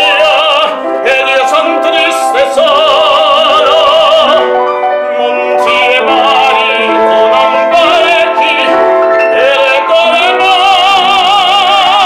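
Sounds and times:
grand piano: 0:00.0 - 0:12.0
operatic tenor singing: 0:00.0 - 0:12.0.

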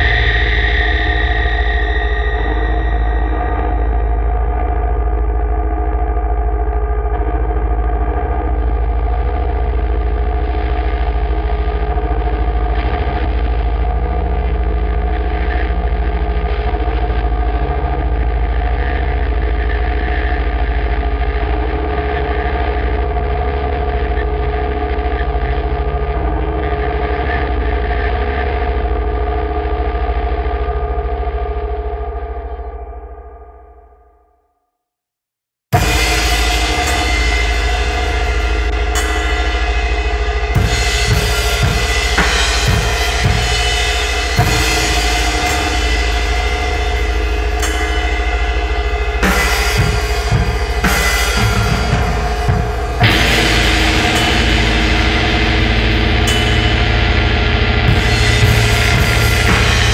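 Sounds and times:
distorted guitar drone: 0:00.0 - 0:33.2, 0:35.8 - 0:59.9
deep low rumble: 0:48.8 - 0:59.9.

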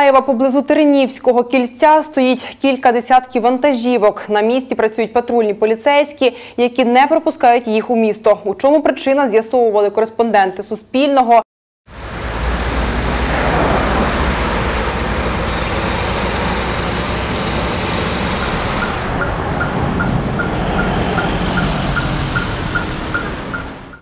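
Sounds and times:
highway traffic driving past: 0:11.9 - 0:24.0.

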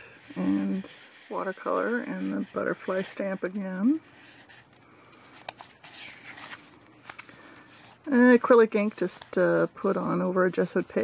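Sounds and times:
paper page rustling: 0:00.2 - 0:11.0.

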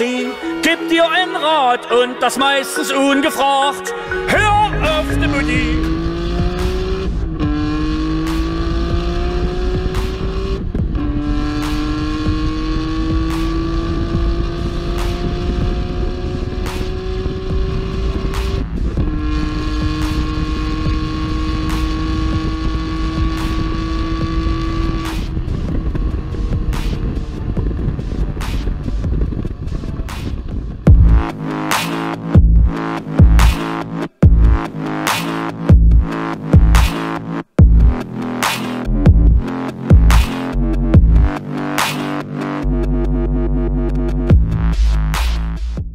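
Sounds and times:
car engine accelerating hard: 0:04.6 - 0:45.1.

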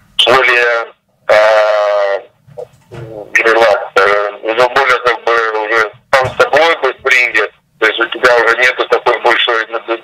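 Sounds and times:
man saying uhh over telephone: 0:01.3 - 0:02.4, 0:03.1 - 0:05.9.

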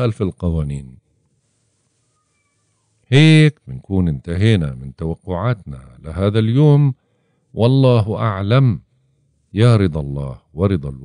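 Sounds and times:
faint pitched call: 0:01.6 - 0:03.1.

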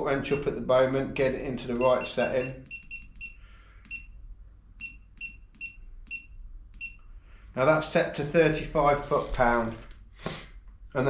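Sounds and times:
short high-pitched beeps: 0:01.8 - 0:04.2, 0:04.8 - 0:07.0.

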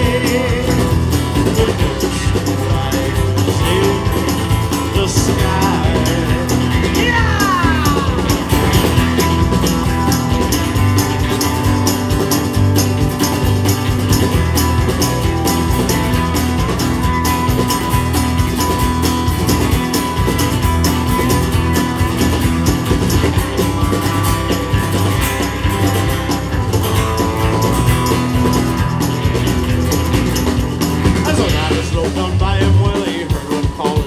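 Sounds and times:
drum kit steady beat: 0:00.0 - 0:34.0
electric and acoustic guitars: 0:00.0 - 0:34.0.

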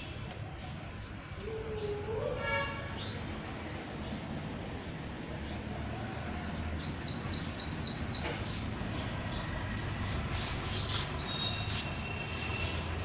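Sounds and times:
small bird chirping: 0:06.6 - 0:09.6, 0:10.6 - 0:13.0.

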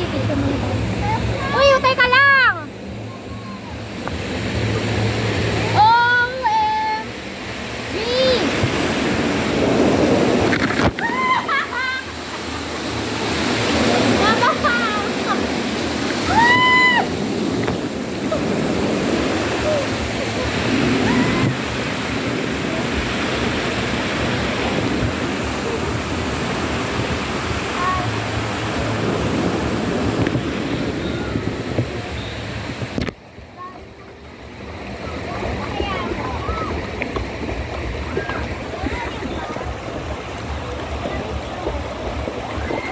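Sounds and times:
water rushing and splashing: 0:00.0 - 0:42.9.

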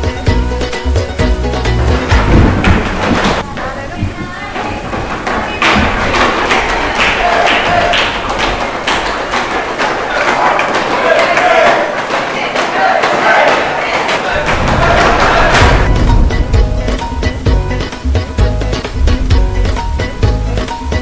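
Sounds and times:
boys chanting and cheering: 0:06.3 - 0:15.9.

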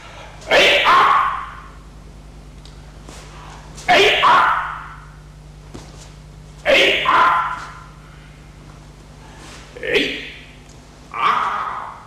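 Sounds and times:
steady low hum: 0:00.0 - 0:12.0
person shouting a kiai: 0:00.5 - 0:01.7, 0:03.9 - 0:05.0, 0:06.6 - 0:07.9, 0:09.8 - 0:10.4.

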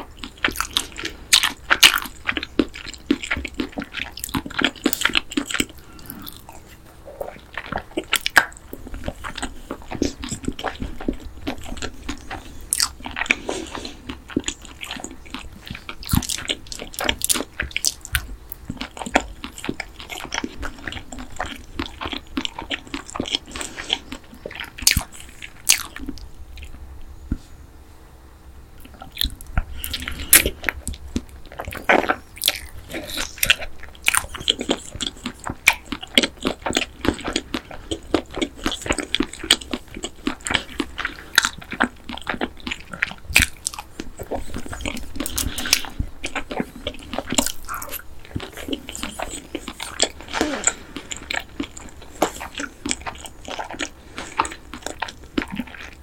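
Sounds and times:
crunchy chewing of fried chicken: 0:00.0 - 0:27.6, 0:28.8 - 0:56.0.

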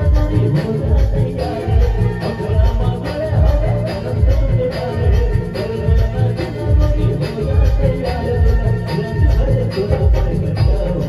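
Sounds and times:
heavy drum beat: 0:00.0 - 0:11.0
keyboard melody: 0:00.0 - 0:11.0
shaker-like percussion: 0:00.0 - 0:11.0.

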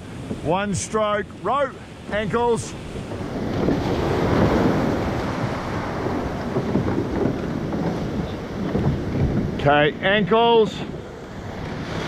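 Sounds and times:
surf breaking around boat: 0:00.0 - 0:12.0
wind buffeting microphone: 0:00.0 - 0:12.0.

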